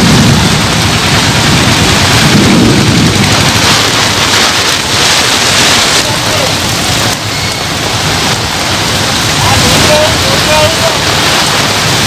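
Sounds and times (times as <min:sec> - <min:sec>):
heavy rain on road: 0:00.0 - 0:12.0
low rumbling: 0:00.0 - 0:12.0.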